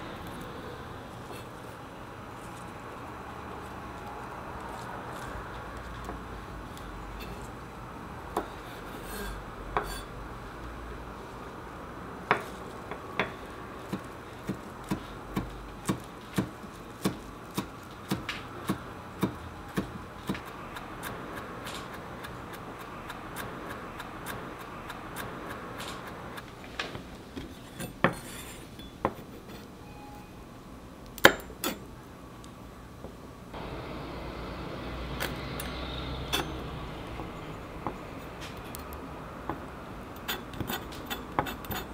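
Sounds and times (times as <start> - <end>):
knife chopping on wooden board: 13.9 - 26.2.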